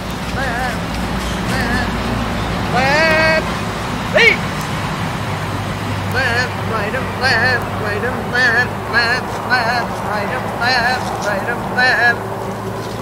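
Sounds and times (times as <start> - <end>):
steady low rumble: 0.0 - 13.0
sheep bleating: 2.6 - 4.5.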